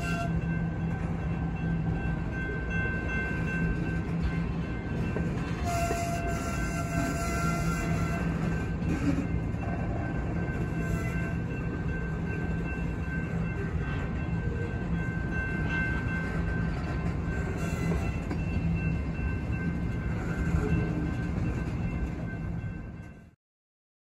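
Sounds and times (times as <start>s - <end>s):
freight train wheels rumbling: 0.0s - 23.4s.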